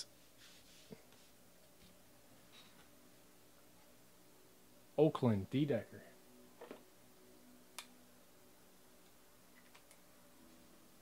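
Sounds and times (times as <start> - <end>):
faint soft rustle: 0.1 - 3.0.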